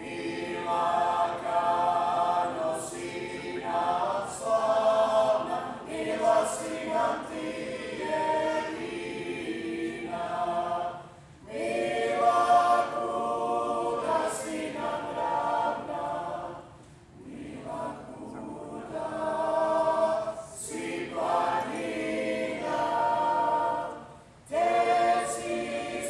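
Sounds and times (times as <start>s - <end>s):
group singing a cappella: 0.0s - 26.0s.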